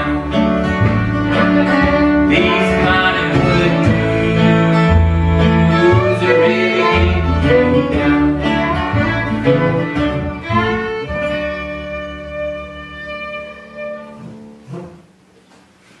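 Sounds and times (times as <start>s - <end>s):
fiddle melody: 0.0s - 14.9s
strummed acoustic guitar: 0.0s - 15.0s
plucked upright bass: 0.0s - 15.3s.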